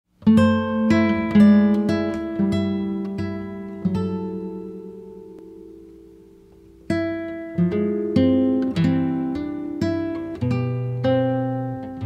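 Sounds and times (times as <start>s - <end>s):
acoustic guitar picking: 0.1s - 12.0s.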